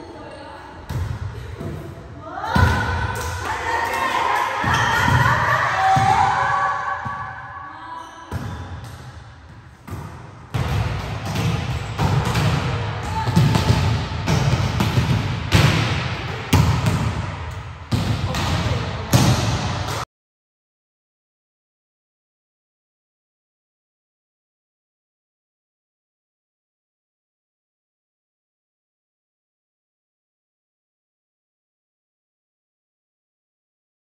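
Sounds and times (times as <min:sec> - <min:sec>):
volleyballs thudding on court floor: 0:08.3 - 0:20.0.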